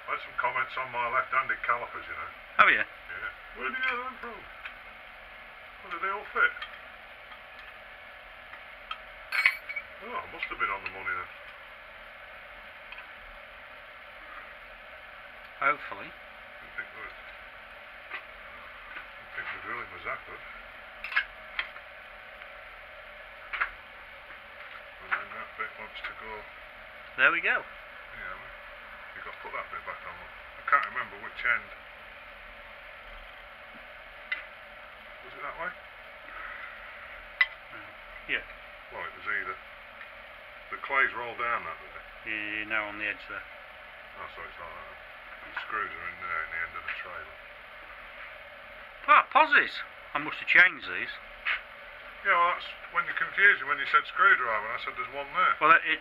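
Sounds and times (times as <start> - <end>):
steel tool clinking against metal: 9.3 - 9.9.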